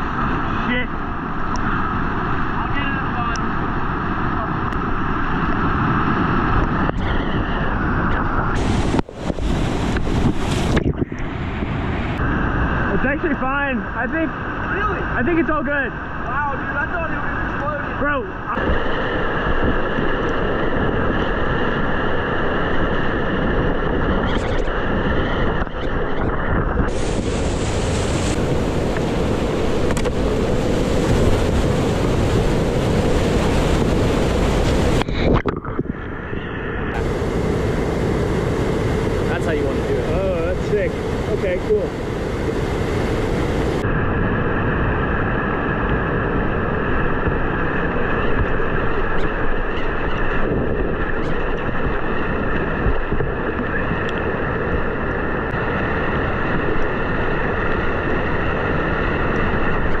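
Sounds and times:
whitewater rushing through rapids: 26.9s - 35.3s.

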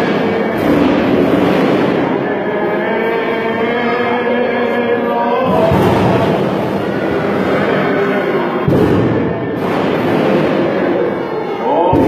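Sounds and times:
choir chanting: 0.0s - 12.0s
crowd noise: 0.0s - 12.0s.

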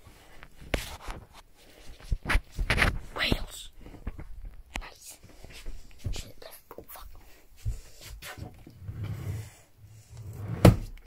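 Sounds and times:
breathy whisper-like hiss: 4.7s - 8.4s.

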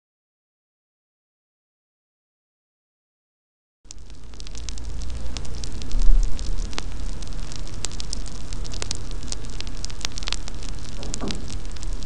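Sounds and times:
fire crackling with sharp pops: 3.9s - 12.0s.

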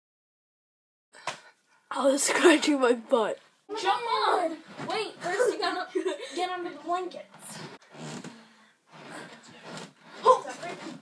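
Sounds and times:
bedding rustling: 3.7s - 11.0s.

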